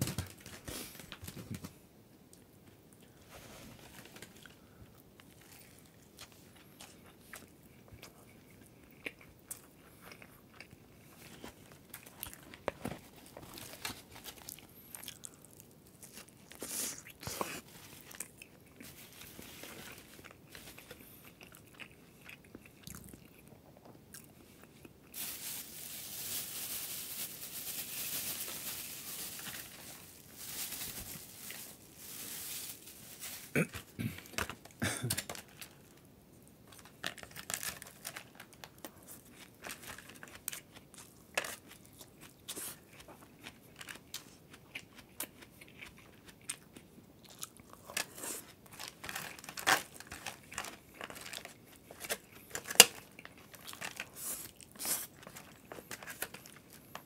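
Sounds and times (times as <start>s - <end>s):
crunching fried food: 4.2s - 36.0s, 36.6s - 57.0s.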